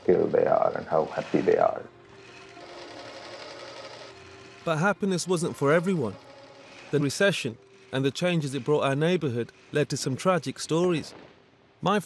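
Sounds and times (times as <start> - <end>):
sewing machines whirring: 0.8 - 12.0.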